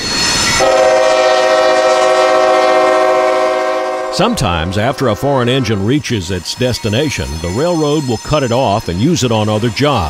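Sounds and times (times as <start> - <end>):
locomotive air horn chord: 0.6 - 8.1.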